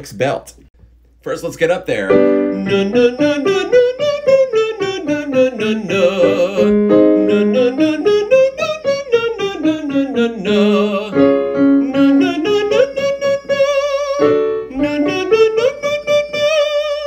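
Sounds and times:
digital piano: 1.9s - 17.0s
man singing vocal scales: 2.1s - 17.0s.

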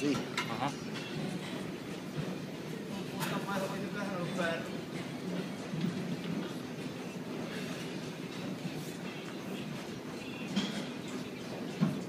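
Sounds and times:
rumbling gym room noise: 0.0s - 12.0s.

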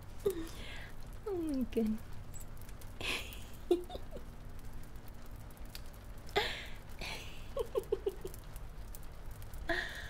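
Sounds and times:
woman giggling and squealing: 3.0s - 4.3s, 7.1s - 8.4s.

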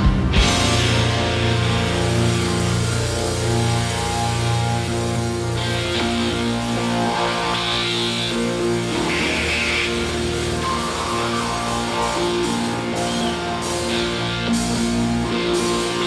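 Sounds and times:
electric guitar ringing chords: 0.0s - 16.0s
rock band playing live: 0.0s - 16.0s.

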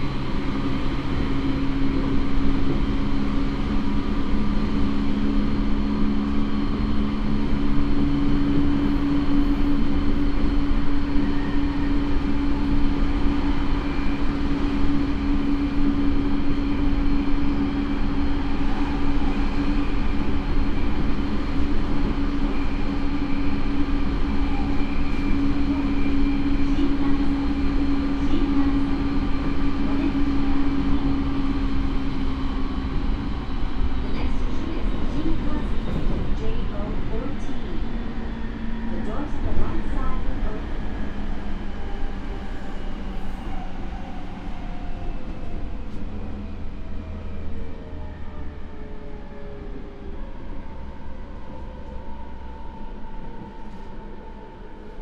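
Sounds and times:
wheels rumbling on rail: 0.0s - 55.0s
train motor hum: 14.4s - 42.4s.

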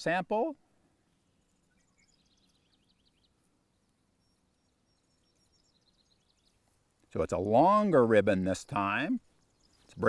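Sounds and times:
faint bird chirps: 0.6s - 7.1s, 9.0s - 10.0s.

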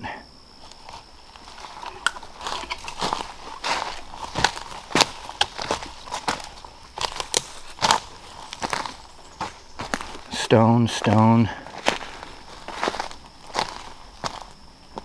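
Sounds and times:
footsteps crunching dry leaves: 0.6s - 15.0s.

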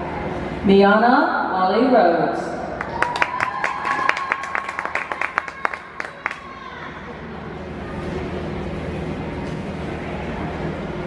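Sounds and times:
hum and murmur of hall: 0.0s - 11.0s.

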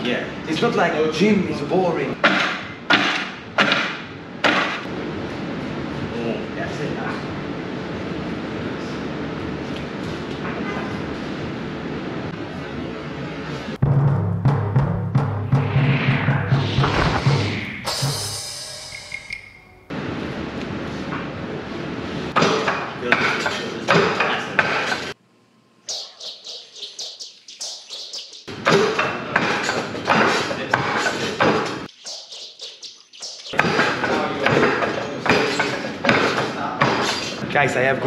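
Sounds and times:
high falling swishes: 15.1s - 19.4s.

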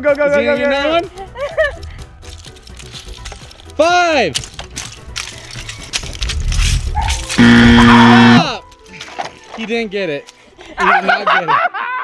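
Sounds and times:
loud electronic buzzer: 7.4s - 8.5s.

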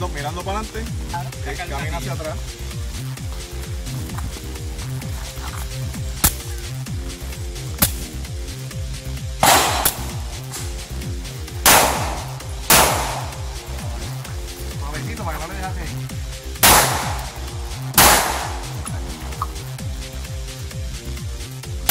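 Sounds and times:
background music with steady beat: 0.0s - 21.9s
pistol shots: 9.4s - 10.7s, 11.6s - 13.4s, 16.6s - 19.5s.

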